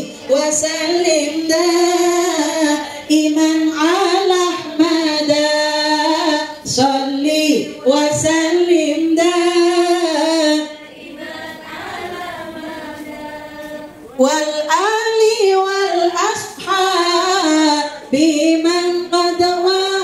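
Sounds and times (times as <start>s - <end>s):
women singing together: 0.0s - 20.0s.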